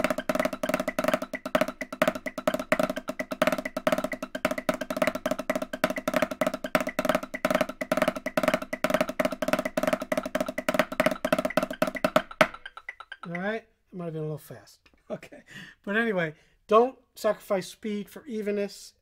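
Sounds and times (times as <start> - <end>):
snare drum double strokes: 0.0 - 13.4.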